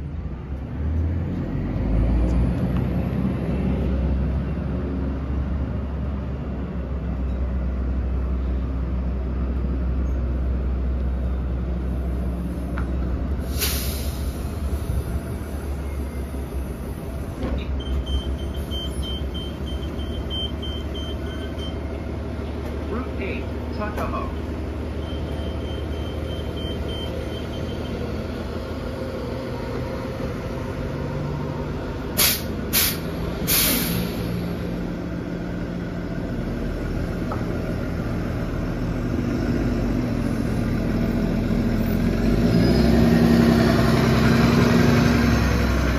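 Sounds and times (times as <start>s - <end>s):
bus idling: 0.0s - 45.9s
high electronic beep: 17.8s - 21.8s, 25.0s - 28.0s.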